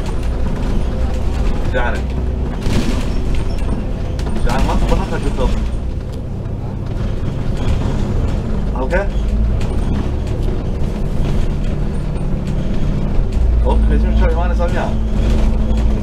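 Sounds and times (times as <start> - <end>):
bus engine and road noise: 0.0 - 16.0
passenger's voice: 1.2 - 2.3, 4.2 - 7.0, 13.4 - 15.2.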